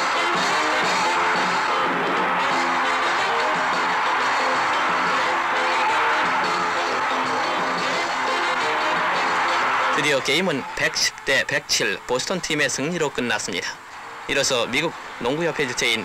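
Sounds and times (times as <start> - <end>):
newsreel background music: 0.0 - 16.0.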